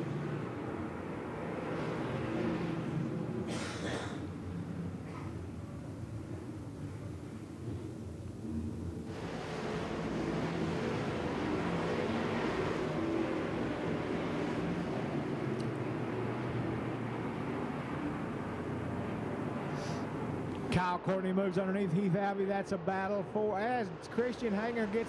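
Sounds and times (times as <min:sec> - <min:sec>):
race car engines roaring: 0:00.0 - 0:25.0.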